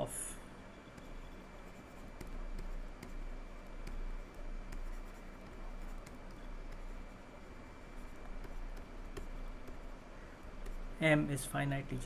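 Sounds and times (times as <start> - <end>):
stylus scratching on tablet: 0.7 - 12.0.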